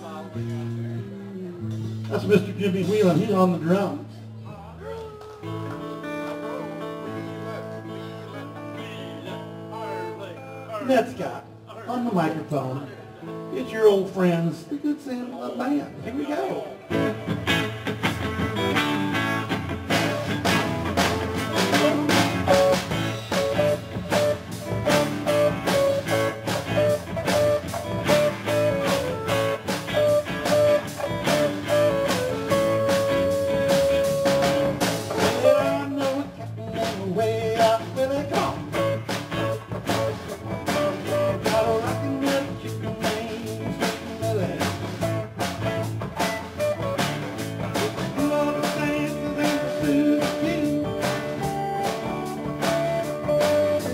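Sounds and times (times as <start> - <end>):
electric guitars: 0.0 - 11.7, 16.0 - 53.9
bass guitar: 0.0 - 14.8, 15.9 - 53.9
drum kit steady beat: 16.9 - 53.9.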